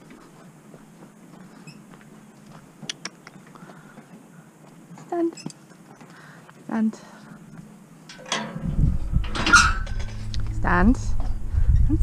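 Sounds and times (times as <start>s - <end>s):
metal gate clanking: 8.0s - 10.8s
low rumbling: 8.2s - 12.0s.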